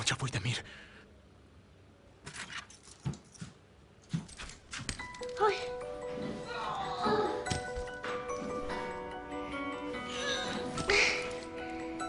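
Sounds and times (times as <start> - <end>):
clothes rustling and thumps: 2.6 - 9.2.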